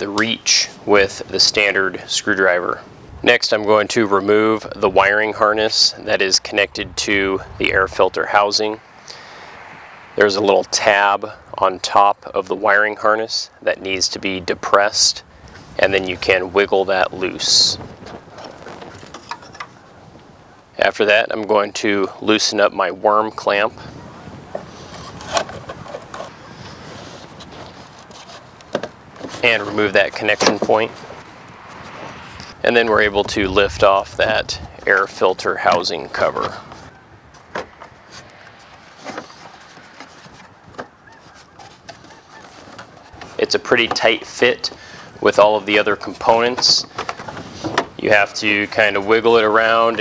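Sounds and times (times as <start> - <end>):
man talking: 0.0 - 9.2, 10.2 - 17.9, 20.8 - 23.9, 29.4 - 31.0, 32.4 - 36.8, 43.4 - 47.0, 48.0 - 50.0
handling plastic parts: 46.5 - 48.0.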